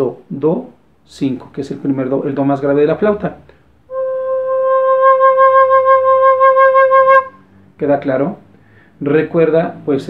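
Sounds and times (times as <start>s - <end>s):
recorder holding low note: 3.9s - 7.4s.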